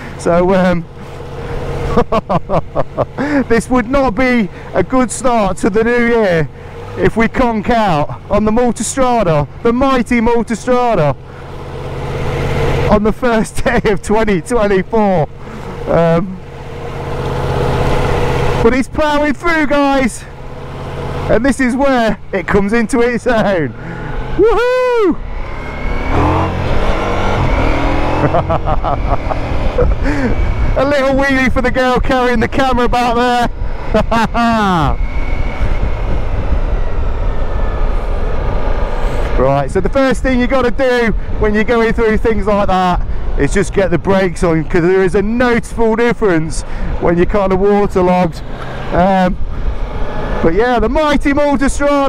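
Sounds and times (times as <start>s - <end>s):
motorcycle engine at high revs: 0.0s - 40.3s, 43.0s - 52.0s
wind: 0.0s - 52.0s
man laughing: 1.8s - 3.8s, 28.1s - 31.1s, 33.8s - 35.0s
wind on microphone: 35.0s - 38.8s.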